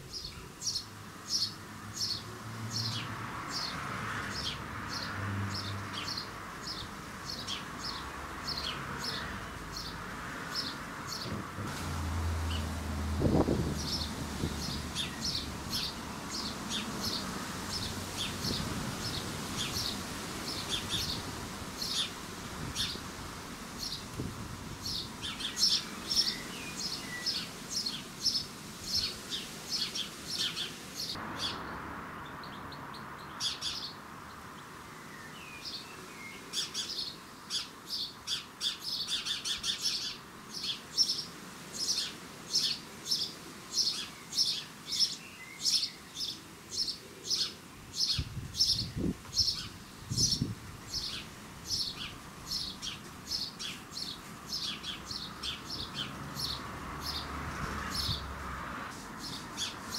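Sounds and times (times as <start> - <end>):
sparrow chirping: 0.1 - 3.7, 4.3 - 11.4, 13.3 - 23.1, 23.8 - 24.2, 24.8 - 31.6, 32.3 - 34.0, 35.1 - 58.2, 59.2 - 59.9.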